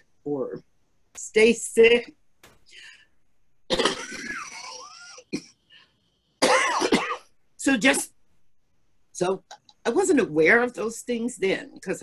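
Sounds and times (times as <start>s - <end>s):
woman coughing and clearing throat: 3.7s - 5.6s, 6.4s - 7.3s.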